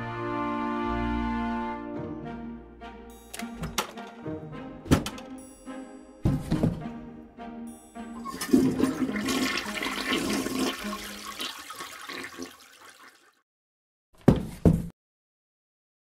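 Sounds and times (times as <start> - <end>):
short musical phrase: 7.4 - 9.9
toilet flushing: 8.2 - 13.4.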